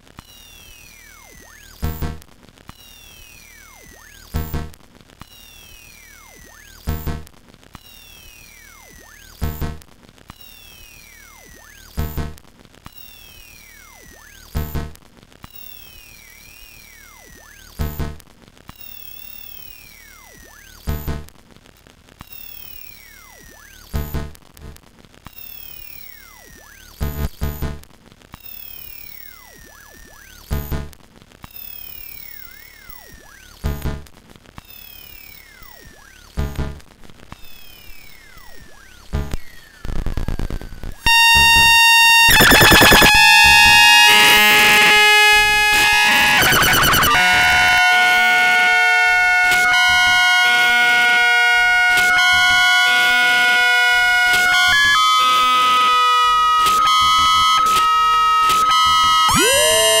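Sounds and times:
electronic clicks and pitch sweeps: 0:41.1 - 1:00.0
held electronic tones: 0:41.1 - 1:00.0.

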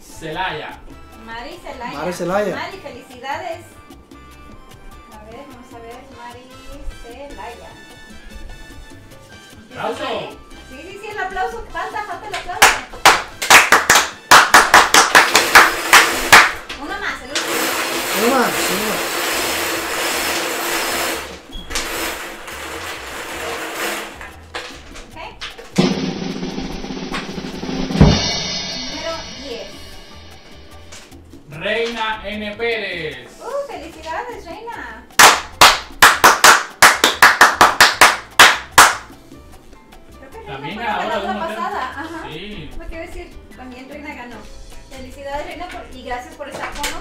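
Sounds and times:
hands clapping quickly: 0:12.2 - 0:18.8, 0:35.2 - 0:39.2.

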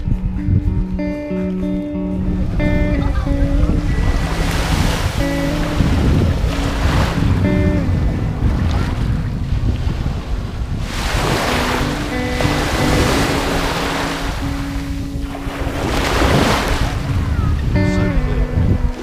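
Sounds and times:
faint music with held notes: 0:00.0 - 0:19.0
wind buffeting the microphone: 0:00.0 - 0:19.0
waves washing up a pebble shore: 0:10.8 - 0:14.2.

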